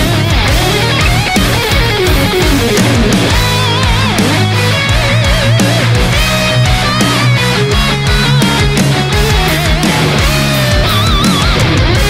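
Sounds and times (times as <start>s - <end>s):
bass guitar: 0.0s - 12.0s
distorted electric guitar lead: 0.0s - 12.0s
driving drums: 0.0s - 12.0s.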